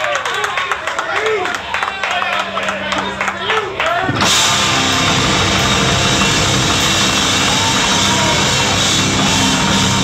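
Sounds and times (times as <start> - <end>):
drum kit: 4.1 - 10.0
electric guitars: 4.1 - 10.0.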